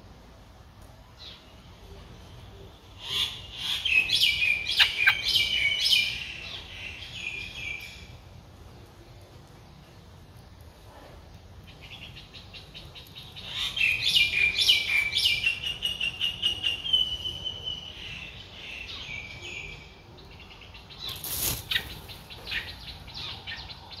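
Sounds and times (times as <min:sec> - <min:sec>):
bird wingbeats: 0:21.1 - 0:22.3.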